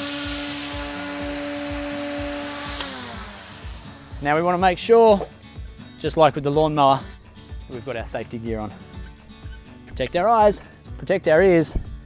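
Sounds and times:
string trimmer motor running: 0.0s - 4.5s.

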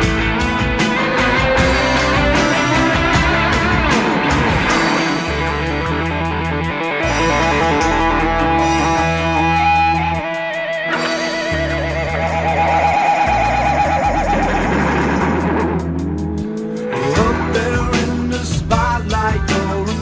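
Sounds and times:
bass guitar notes: 0.0s - 20.0s
electric guitar: 0.0s - 20.0s.

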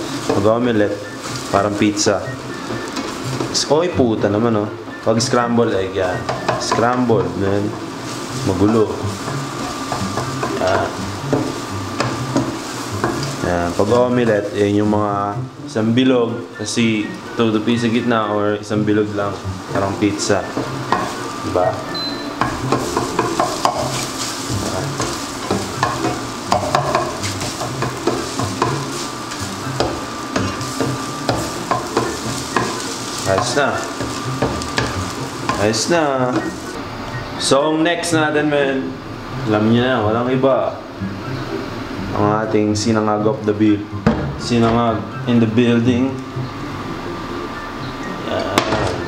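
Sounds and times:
eggs sizzling in a frying pan: 0.0s - 36.8s
spatula scraping a pan: 6.3s - 14.6s, 22.3s - 35.8s.

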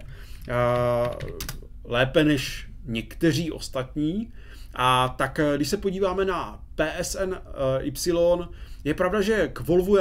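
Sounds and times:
computer keyboard keystrokes: 0.4s - 1.6s.

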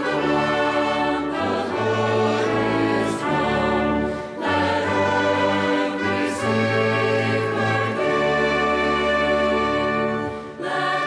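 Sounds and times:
brass ensemble playing: 0.0s - 11.0s
choir singing: 0.0s - 11.0s.

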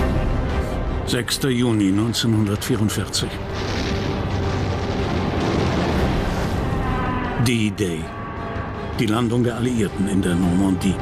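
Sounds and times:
artillery fire: 3.5s - 6.7s
explosions: 3.5s - 7.1s.

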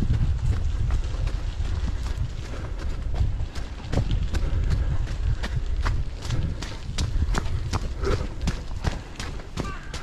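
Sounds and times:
running footsteps on pavement: 0.0s - 10.0s.

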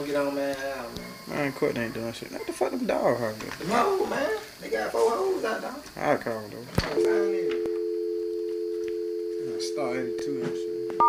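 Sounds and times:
telephone dial tone: 7.2s - 11.0s.

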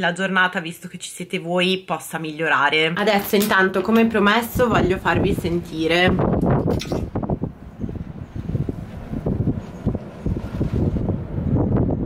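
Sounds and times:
strong wind gusting on microphone: 3.8s - 12.0s.

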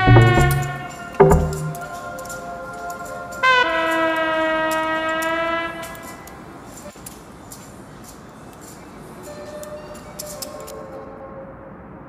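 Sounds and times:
horn-like synthesizer chord: 0.0s - 1.8s.

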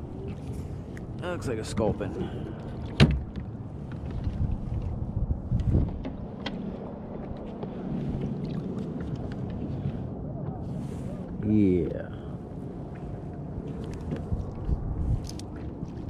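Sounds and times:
low wind rumble on microphone: 0.0s - 16.0s.

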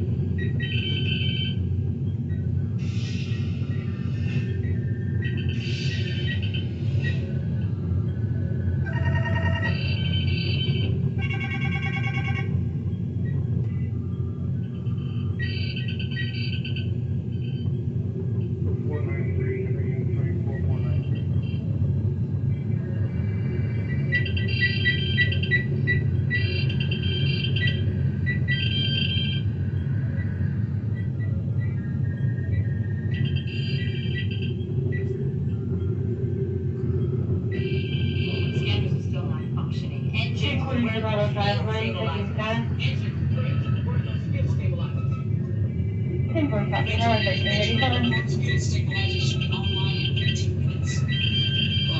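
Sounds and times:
electronic console beeps: 8.8s - 12.5s, 23.9s - 29.5s, 30.9s - 35.2s
low engine hum: 16.9s - 51.8s.

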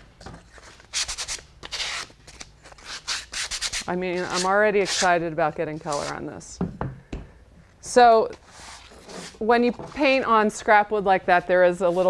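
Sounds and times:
sandpaper rubbing wood: 2.8s - 5.1s.

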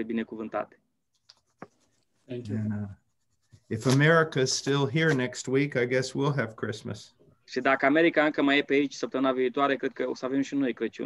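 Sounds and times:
man speaking: 2.3s - 3.0s, 3.7s - 11.0s.

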